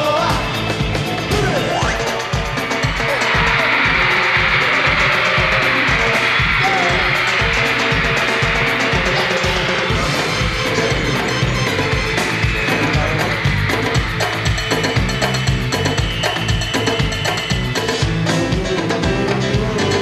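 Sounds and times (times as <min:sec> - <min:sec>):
live band playing dance-pop: 0:00.0 - 0:20.0
steady drum beat: 0:00.0 - 0:20.0.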